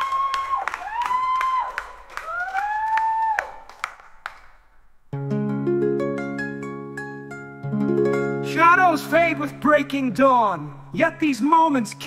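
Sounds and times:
people clapping: 0.0s - 4.9s.

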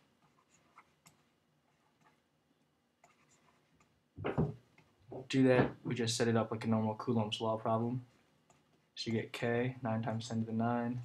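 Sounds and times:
stylus writing on tablet: 0.0s - 2.3s, 3.0s - 4.0s.

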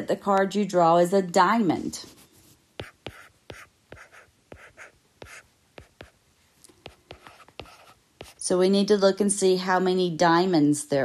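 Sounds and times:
stylus tapping and scratching on tablet: 1.7s - 8.5s.

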